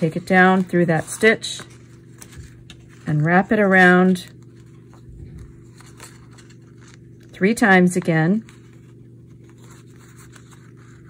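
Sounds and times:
thread scraping on book spine: 0.0 - 7.3, 8.0 - 11.0
steady low hum: 0.0 - 11.0.

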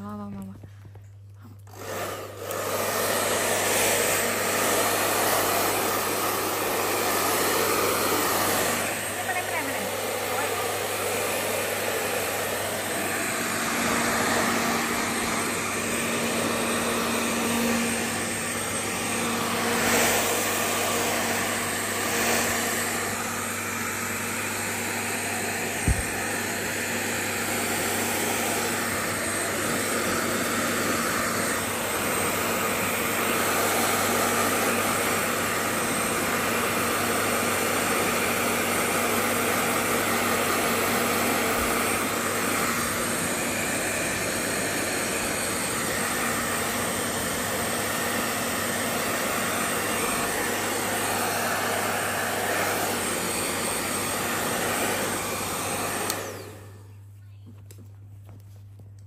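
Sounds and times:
hair dryer running: 0.0 - 59.0.

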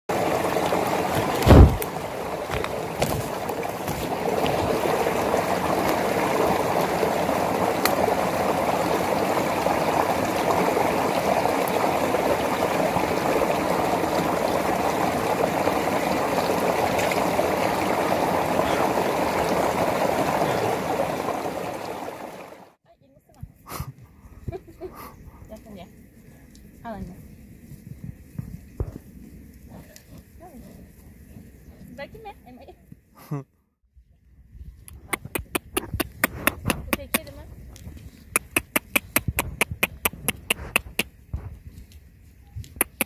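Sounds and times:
stream flowing over stones: 0.1 - 22.8, 38.2 - 41.0.

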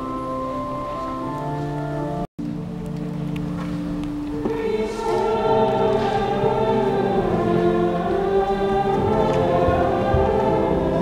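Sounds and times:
choir singing long notes: 4.0 - 11.0.

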